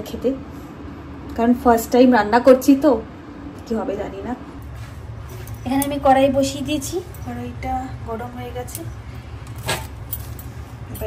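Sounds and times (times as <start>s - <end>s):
kitchen background hum: 0.0s - 11.0s.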